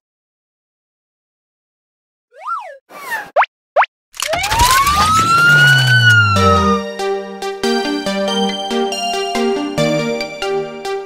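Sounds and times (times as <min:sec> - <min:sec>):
short upward zips: 0:04.2 - 0:06.8
noisy swoosh with siren wail: 0:04.4 - 0:07.1.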